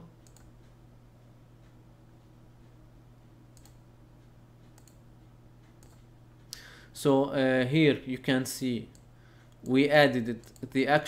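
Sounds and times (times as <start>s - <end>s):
low steady hum: 0.0s - 11.0s
computer mouse clicks: 0.2s - 0.8s, 3.5s - 5.0s, 5.6s - 6.6s, 10.4s - 10.7s.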